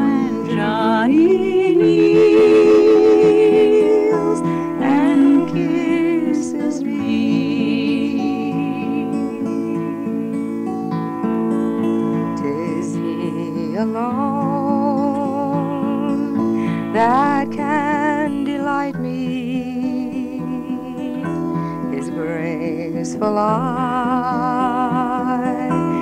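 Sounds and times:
person singing with vibrato: 0:00.0 - 0:11.0, 0:12.1 - 0:26.0
fingerpicked acoustic guitar: 0:00.0 - 0:26.0.

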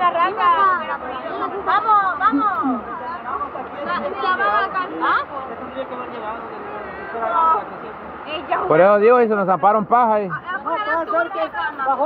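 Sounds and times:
people chattering: 0:00.0 - 0:12.0
river rushing over rapids: 0:00.0 - 0:12.0.

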